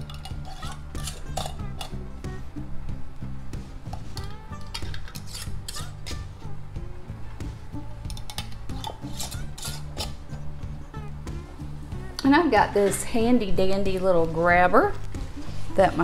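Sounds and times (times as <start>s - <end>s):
metal scraping on glass jars: 0.0s - 2.0s, 4.0s - 6.3s, 8.1s - 10.2s
soft background music: 0.0s - 16.0s.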